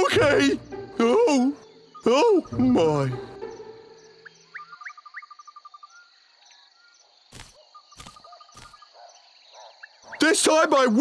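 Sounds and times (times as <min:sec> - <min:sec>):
insect chirring: 0:00.0 - 0:10.4
cricket chirps: 0:00.0 - 0:11.0.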